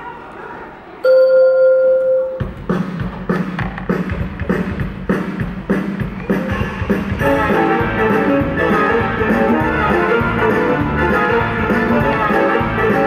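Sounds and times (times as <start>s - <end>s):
music with steady beat: 2.2s - 13.0s.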